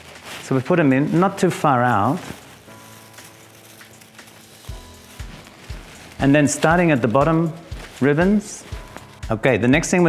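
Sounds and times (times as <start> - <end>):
crackly rustling of ribbon: 0.0 - 10.0
quiet background music: 0.0 - 10.0.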